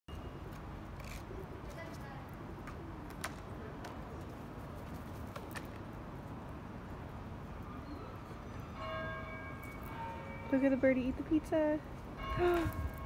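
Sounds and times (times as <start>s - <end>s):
low city rumble: 0.1s - 13.0s.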